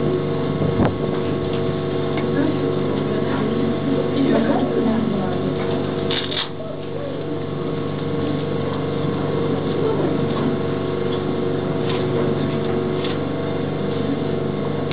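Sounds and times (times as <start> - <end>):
steady machine hum: 0.0 - 14.9.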